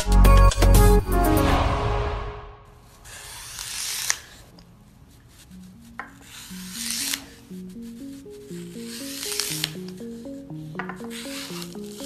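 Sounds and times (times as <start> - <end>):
blade scraping through foam: 2.8 - 12.0.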